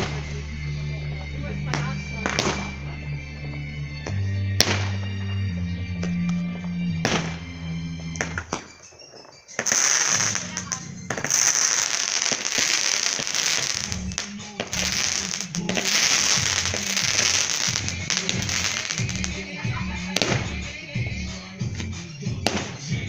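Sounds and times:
music with low regular beat: 0:00.0 - 0:08.7, 0:09.6 - 0:23.0
fireworks crackling and hissing: 0:00.0 - 0:23.0.

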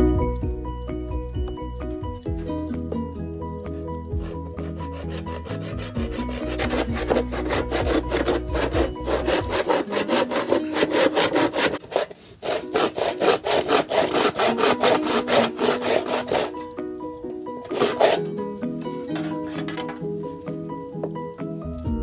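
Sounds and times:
hand saw cutting bamboo: 0:04.2 - 0:16.8, 0:17.6 - 0:20.0.

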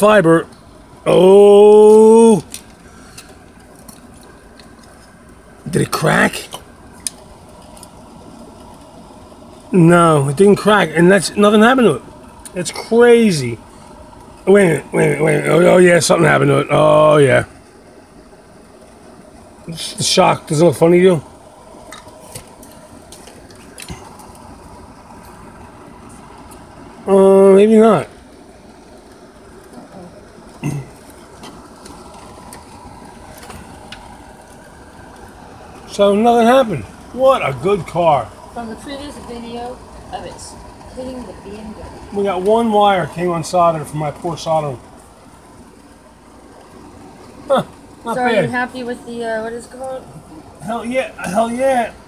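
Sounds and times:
steady background hum: 0:00.0 - 0:52.0
steady low background noise: 0:00.0 - 0:52.0
person saying huh: 0:30.6 - 0:30.9.

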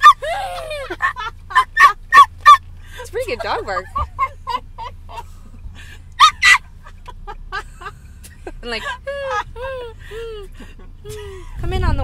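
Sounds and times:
person imitating dog yelps: 0:00.0 - 0:00.8, 0:01.8 - 0:02.6, 0:06.2 - 0:06.6
car cabin rumble: 0:00.0 - 0:12.0.

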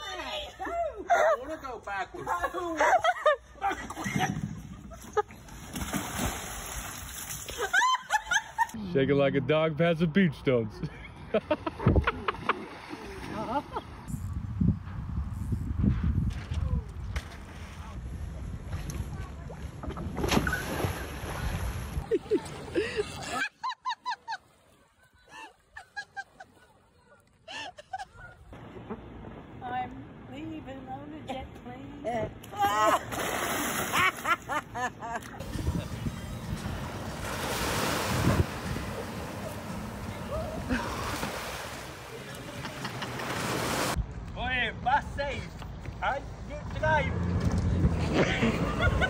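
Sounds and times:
water sloshing: 0:03.7 - 0:08.7, 0:32.9 - 0:44.0
heavy splash into pool: 0:05.6 - 0:07.5, 0:20.2 - 0:22.0, 0:33.0 - 0:34.2.

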